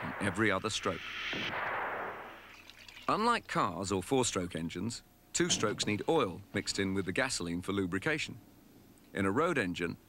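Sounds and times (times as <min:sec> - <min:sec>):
explosion rushing hiss: 0:00.0 - 0:02.7.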